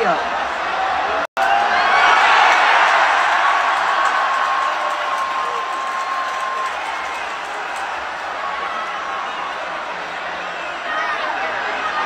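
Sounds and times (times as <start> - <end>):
crowd cheering and yelling: 0.0 - 12.0.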